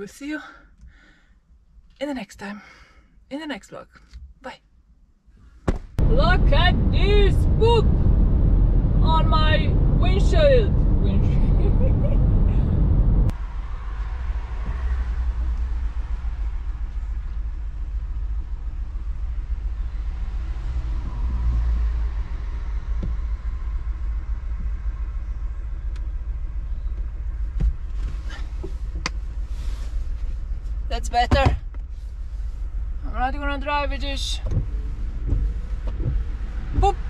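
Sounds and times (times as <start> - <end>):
low rumble around parked car: 5.4 - 37.0
car cabin road noise: 5.6 - 37.0.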